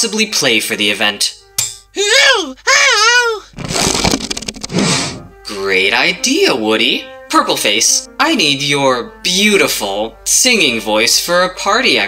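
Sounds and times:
raspberry blown through lips: 3.5s - 5.3s.

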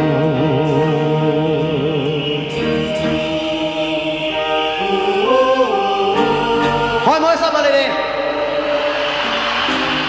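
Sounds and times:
live band sustained chord: 0.0s - 10.0s.

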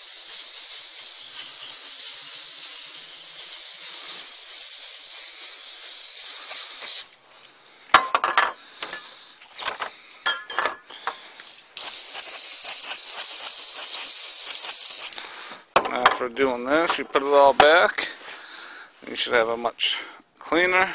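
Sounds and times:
aerosol spray hissing: 0.0s - 7.2s, 8.6s - 18.4s
light clicks and clinks: 8.0s - 11.7s.

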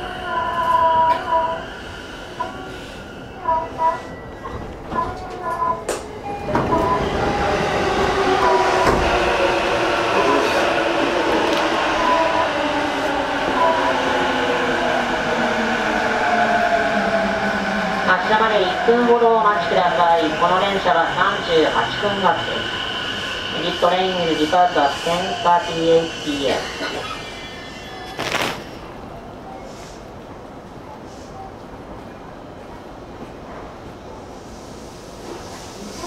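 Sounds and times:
train running noise: 0.0s - 30.0s.

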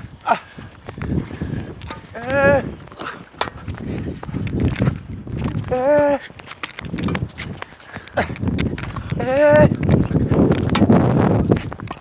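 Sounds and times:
quick running footsteps: 0.0s - 12.0s
racket hitting tennis ball: 1.8s - 2.4s.

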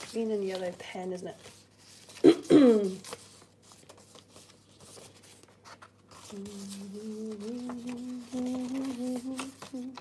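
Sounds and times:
woman humming: 6.3s - 10.0s.

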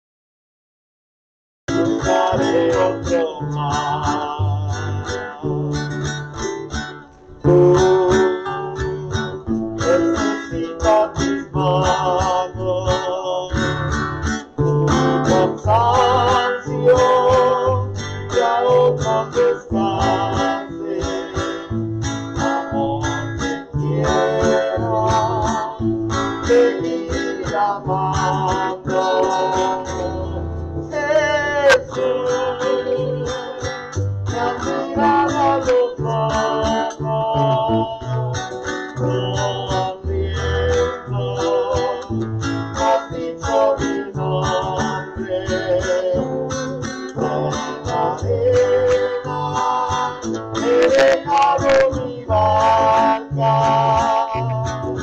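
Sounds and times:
person singing: 1.7s - 5.6s, 7.4s - 13.9s, 15.0s - 21.7s, 22.4s - 55.0s
acoustic guitar strumming: 1.7s - 55.0s
bass line: 1.7s - 55.0s.

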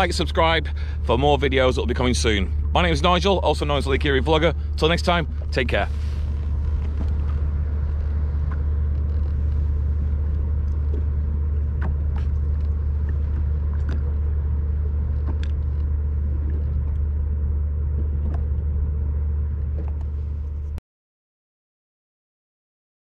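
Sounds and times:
watercraft engine idling: 0.0s - 20.8s.

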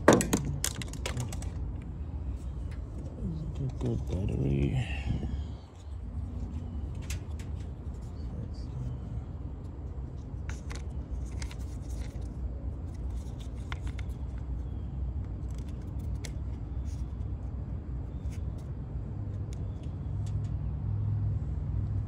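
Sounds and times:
steady low rumble: 0.0s - 22.0s
plastic clicks and scrapes: 10.4s - 14.4s.

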